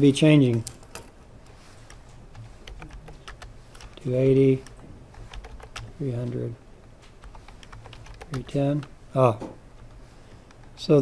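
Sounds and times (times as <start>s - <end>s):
computer keyboard keystrokes: 0.4s - 1.1s, 1.8s - 6.0s, 7.2s - 9.0s, 9.8s - 10.8s.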